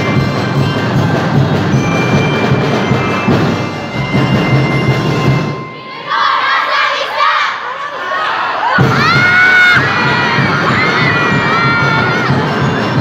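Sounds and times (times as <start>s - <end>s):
drumbeat music: 0.0s - 5.9s, 8.7s - 13.0s
children shouting and cheering: 5.6s - 13.0s.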